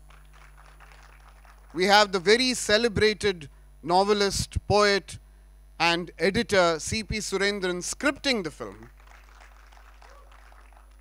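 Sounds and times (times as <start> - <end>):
low electrical mains hum: 0.0 - 11.0.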